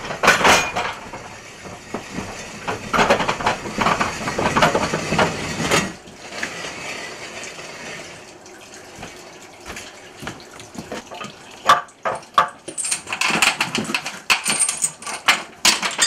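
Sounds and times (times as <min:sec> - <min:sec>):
mine cart wheels clattering on rails: 0:00.0 - 0:08.1, 0:11.7 - 0:16.0.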